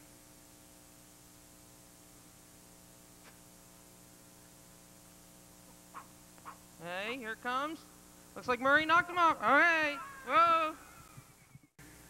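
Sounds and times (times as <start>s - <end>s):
faint electrical hum: 0.0s - 12.0s
man calling out: 8.4s - 10.9s.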